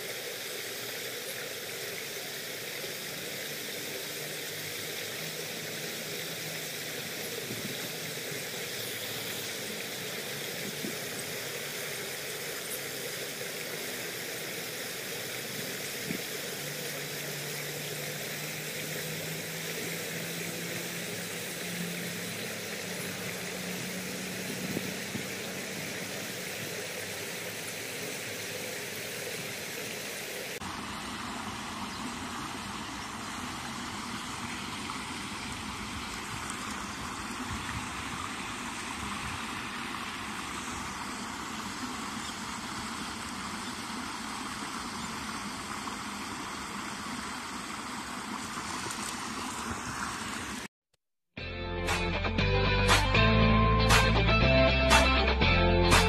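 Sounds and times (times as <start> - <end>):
stream water rushing: 0.0 - 50.7.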